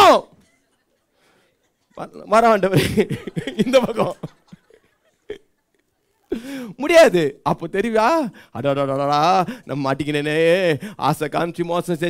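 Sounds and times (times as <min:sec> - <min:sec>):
man speaking animatedly: 0:00.0 - 0:00.4, 0:02.0 - 0:04.3, 0:06.5 - 0:12.0.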